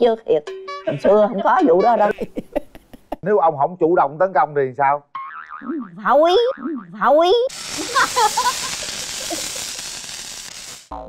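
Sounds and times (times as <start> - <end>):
wobbling boing sound effect: 5.2 - 7.3
steady hiss: 7.5 - 11.0.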